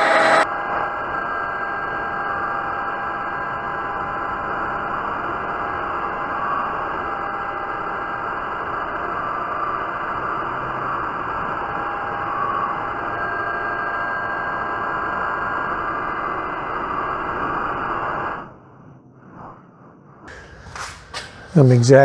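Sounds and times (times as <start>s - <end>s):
metal lathe cutting: 0.0s - 0.4s
faint whine: 0.0s - 22.0s.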